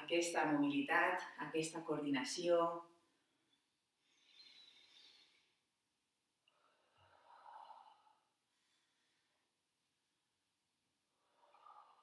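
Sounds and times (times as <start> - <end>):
woman breathing: 3.2 - 5.8, 6.4 - 9.7, 11.1 - 12.0.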